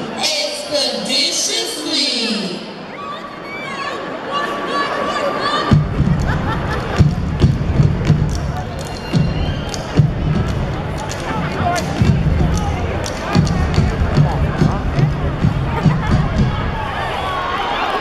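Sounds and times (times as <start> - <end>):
voices from stage and crowd: 0.0 - 18.0.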